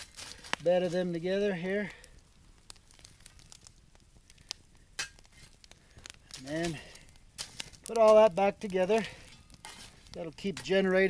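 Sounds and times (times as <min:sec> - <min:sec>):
shovel clicking on coals: 0:00.0 - 0:01.2, 0:02.7 - 0:11.0
coals crackling: 0:00.0 - 0:11.0.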